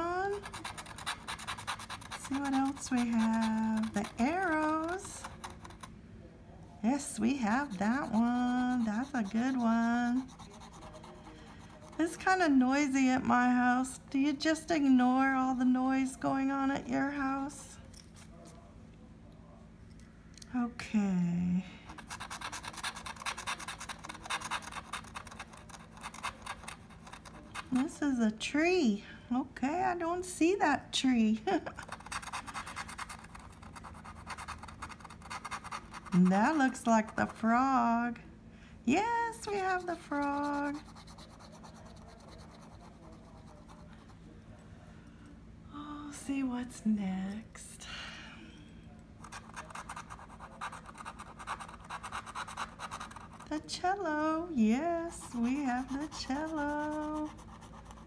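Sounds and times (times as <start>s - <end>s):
scratching a lottery ticket: 0.0s - 5.9s, 6.9s - 13.0s, 21.8s - 28.2s, 31.7s - 37.8s, 38.9s - 44.4s, 49.2s - 58.0s.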